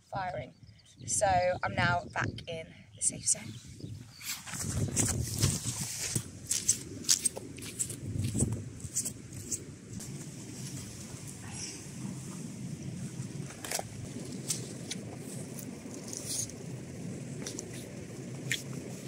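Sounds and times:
footsteps: 4.2s - 12.4s
clothing and backpack rustling: 4.2s - 16.5s.

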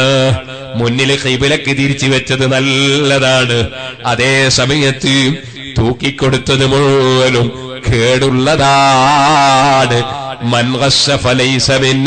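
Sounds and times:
man preaching in chanted delivery: 0.0s - 12.0s.

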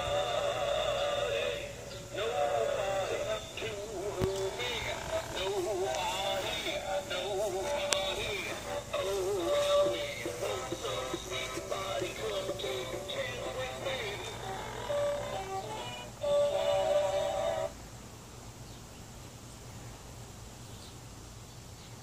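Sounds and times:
recorded singing with music: 0.0s - 17.8s.

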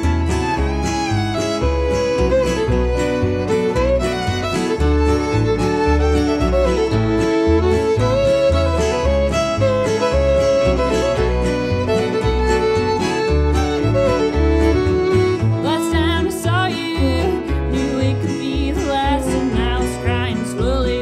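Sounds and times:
fiddle melody: 0.0s - 21.0s
guitar: 0.0s - 21.0s
steady bass line: 0.0s - 21.0s.

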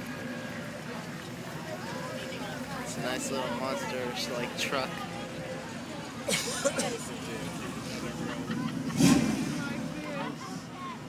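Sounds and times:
crowd voices: 0.0s - 11.0s
truck engine revving: 3.1s - 10.7s.

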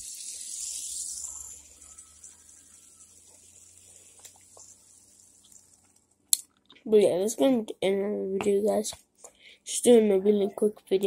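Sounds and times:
fidget spinner whirring: 0.0s - 6.2s.

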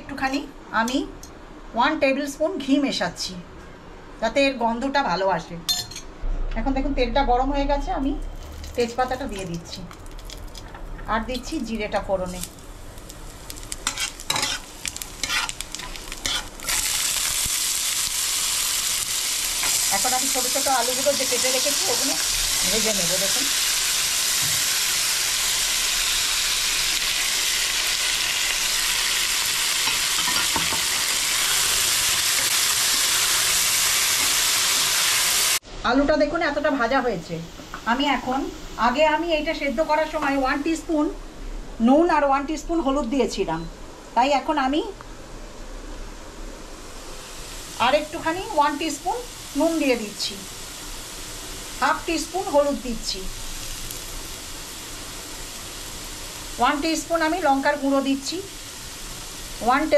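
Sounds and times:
potatoes sizzling in pan: 8.4s - 35.6s, 47.0s - 59.9s
spatula scraping pan: 13.8s - 16.8s.

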